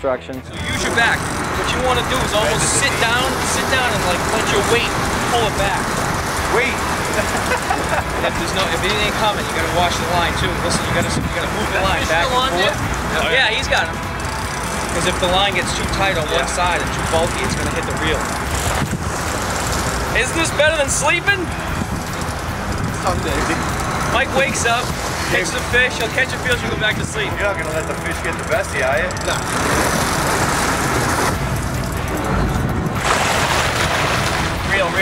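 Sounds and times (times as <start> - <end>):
boat engine rumbling: 0.0 - 35.0
wind and water rushing: 0.6 - 17.3, 18.2 - 27.3, 29.4 - 35.0
wind noise on microphone: 9.9 - 13.2, 18.4 - 20.8, 21.4 - 25.4, 29.4 - 34.9.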